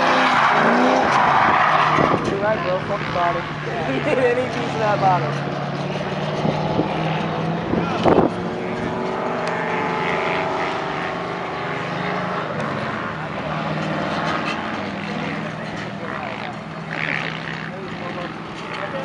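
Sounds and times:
distant car engine revving: 0.0 - 19.0.

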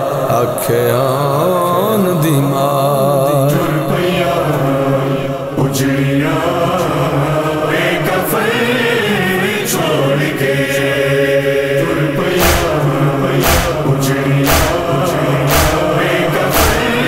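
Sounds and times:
choir-like chorus: 0.0 - 17.0
voices chanting a lament: 0.0 - 17.0.

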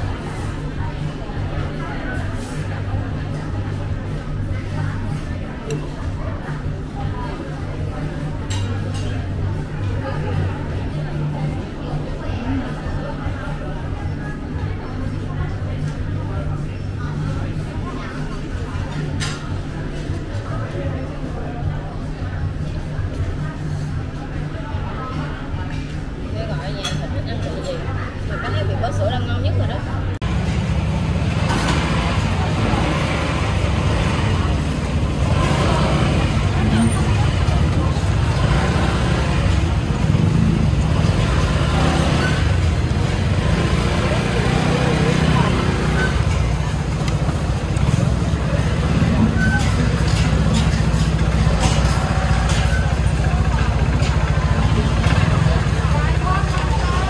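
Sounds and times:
many people talking: 0.0 - 57.0
road traffic rumble: 0.0 - 57.0.

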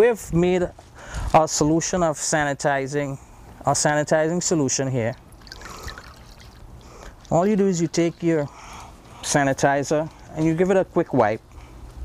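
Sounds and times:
liquid trickling into bowl: 5.0 - 8.5.

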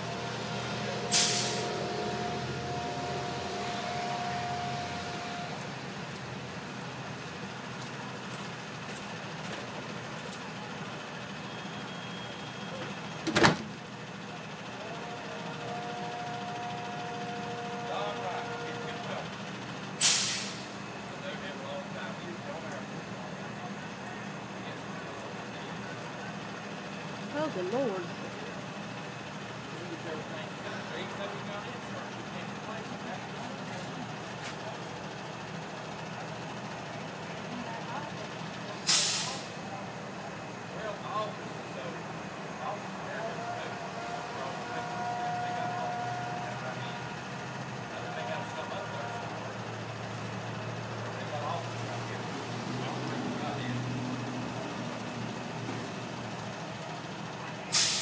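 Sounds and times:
truck engine humming: 0.0 - 58.0
air brake hiss: 1.1 - 1.8, 20.0 - 20.8, 38.9 - 39.6, 57.7 - 58.0.

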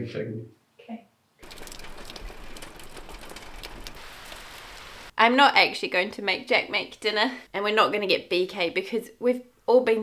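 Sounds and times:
steady rain patter: 1.4 - 5.2.

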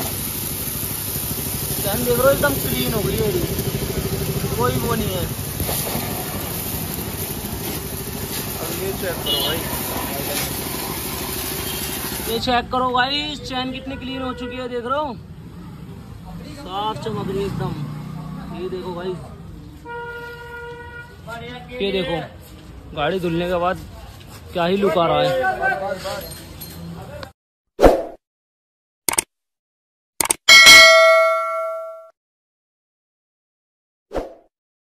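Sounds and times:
hose water jet spraying: 0.0 - 12.5
quick double click: 29.1 - 29.3, 30.2 - 30.4
bell ding: 30.5 - 32.1.

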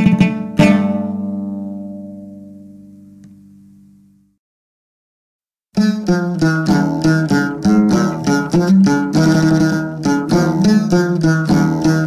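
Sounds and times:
plucked string chord ringing: 0.0 - 3.4, 5.8 - 12.0.

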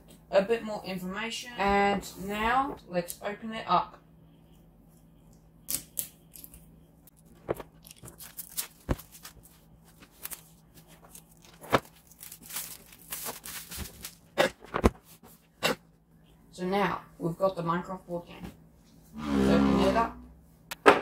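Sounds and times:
packaging tearing and crinkling: 7.7 - 14.2.

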